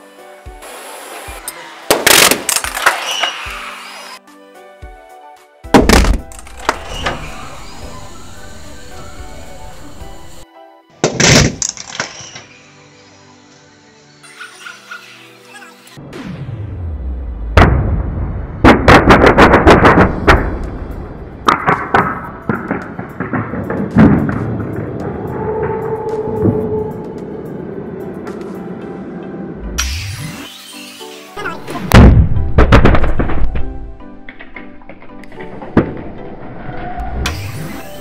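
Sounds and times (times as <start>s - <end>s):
background music: 0.0s - 38.0s
balloons bursting with bangs: 5.7s - 6.8s, 17.6s - 20.7s, 21.4s - 24.9s, 31.8s - 34.4s.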